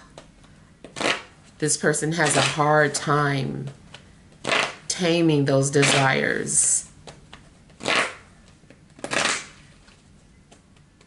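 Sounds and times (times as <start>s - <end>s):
cards shuffled by hand: 7.0s - 11.0s.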